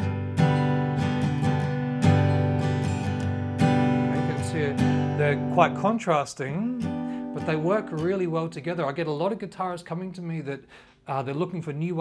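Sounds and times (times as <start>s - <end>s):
acoustic guitar strumming: 0.0s - 9.3s.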